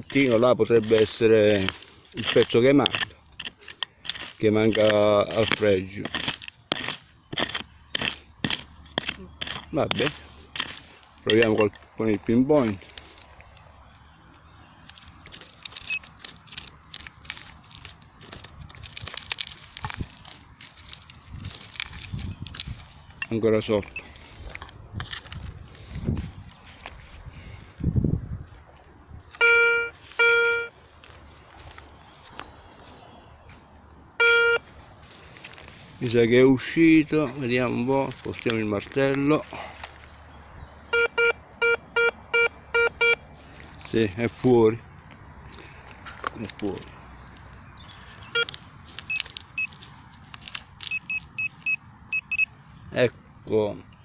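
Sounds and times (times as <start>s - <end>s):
hand pick striking stony soil: 0.0s - 12.0s
metal detector beeps: 0.1s - 11.8s, 15.8s - 16.1s, 23.8s - 24.1s, 29.3s - 30.8s, 34.2s - 34.6s, 40.9s - 43.2s, 48.3s - 49.8s, 50.8s - 52.5s.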